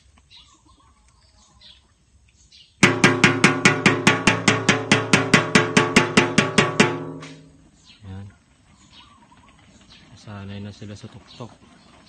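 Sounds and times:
metal basin beaten rapidly: 0:02.8 - 0:07.7.

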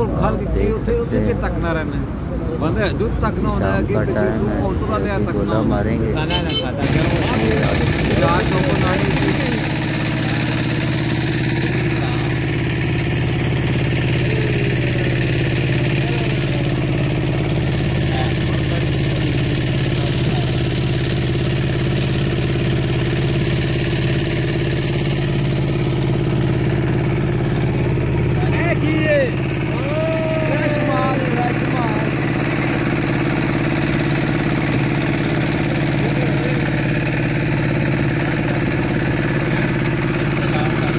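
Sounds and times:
boat engine running steadily: 0:06.2 - 0:40.9.

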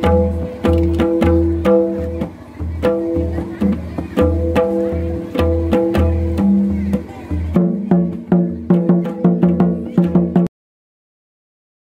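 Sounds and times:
hand drum played quickly: 0:00.0 - 0:10.5.

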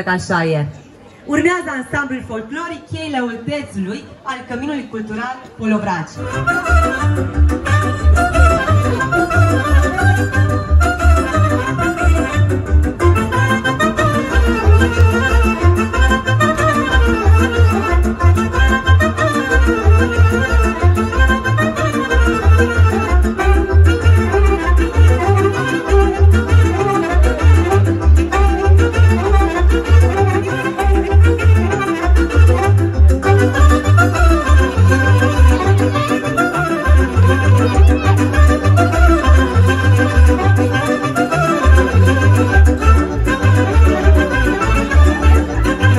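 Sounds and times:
folk dance music over loudspeakers: 0:00.0 - 0:45.9.

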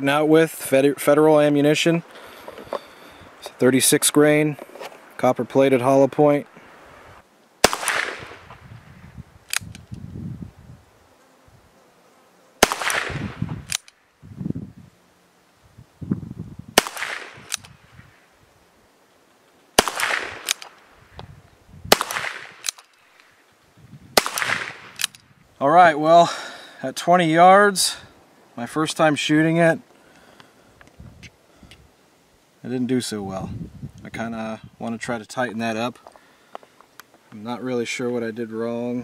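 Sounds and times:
faint sharp clicks: 0:09.5 - 0:10.0, 0:13.7 - 0:14.0, 0:17.1 - 0:17.8, 0:20.1 - 0:21.3.

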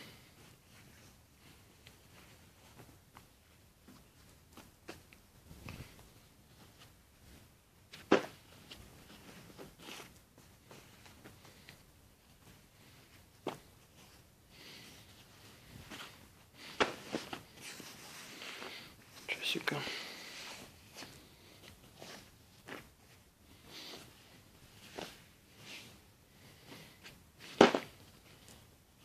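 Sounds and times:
rustling of denim jeans: 0:00.0 - 0:29.0
soft fabric swish: 0:00.3 - 0:29.0.

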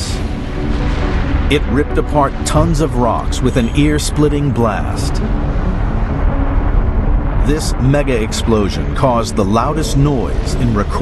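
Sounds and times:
volcano rumbling: 0:00.0 - 0:11.0.

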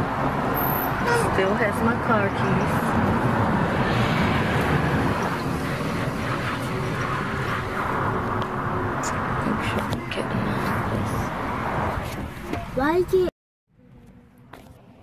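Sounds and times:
traffic going by: 0:00.0 - 0:15.0.

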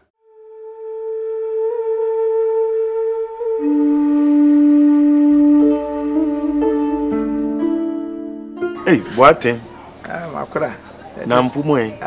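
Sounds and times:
crickets chirring: 0:08.7 - 0:12.0
men talking: 0:08.8 - 0:12.0.

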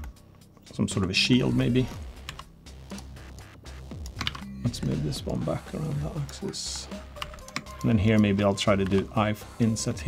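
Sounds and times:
background music: 0:00.0 - 0:10.0
computer keyboard keystrokes: 0:04.0 - 0:04.5, 0:07.2 - 0:09.1.

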